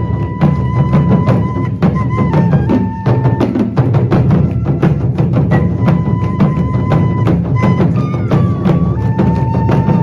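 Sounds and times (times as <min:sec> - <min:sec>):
taiko drums beating: 0:00.0 - 0:10.0.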